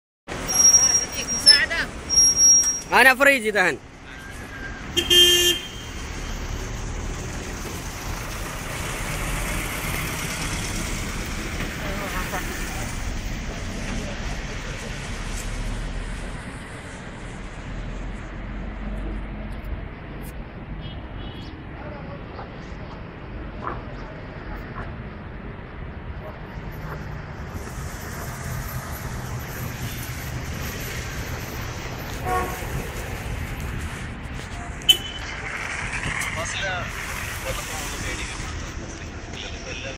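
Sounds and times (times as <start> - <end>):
road traffic engine noise: 0.3 - 39.9
car horn toot: 4.5 - 6.0, 32.2 - 32.7, 34.9 - 35.3.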